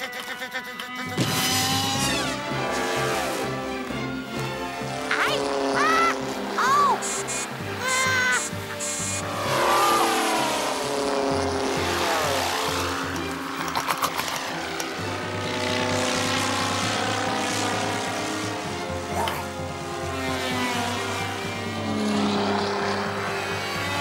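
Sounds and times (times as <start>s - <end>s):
background music: 0.0s - 24.0s
model aeroplane engines buzzing: 0.0s - 24.0s.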